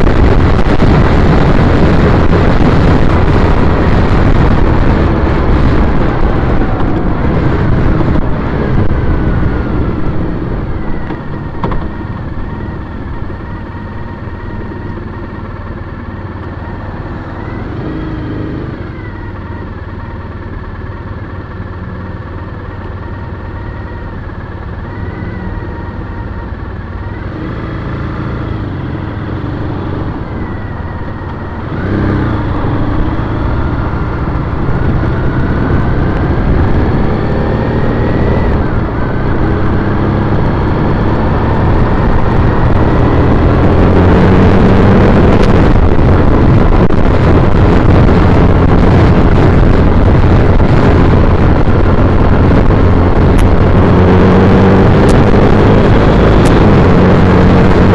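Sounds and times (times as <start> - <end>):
motorcycle pulling away: 0.0 - 57.9.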